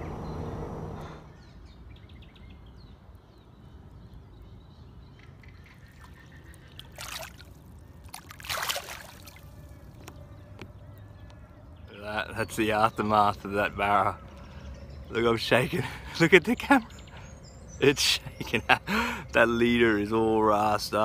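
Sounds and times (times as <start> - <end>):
low steady rumble: 0.0 - 1.5
water sloshing and trickling: 5.0 - 11.4
short water splashes: 5.4 - 9.8.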